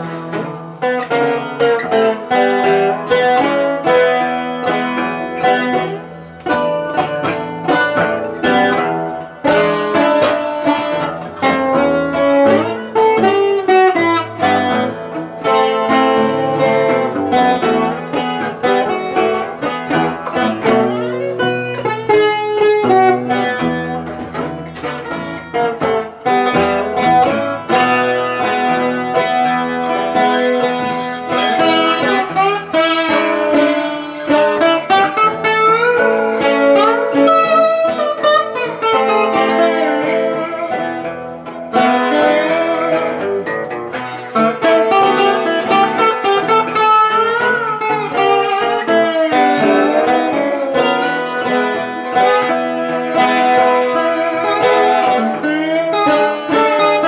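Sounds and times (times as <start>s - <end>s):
acoustic guitars playing blues: 0.0s - 57.0s.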